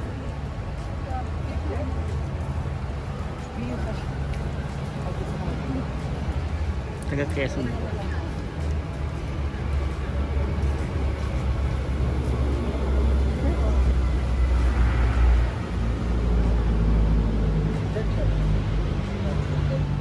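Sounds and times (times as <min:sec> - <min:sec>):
faint voices: 0:00.0 - 0:20.0.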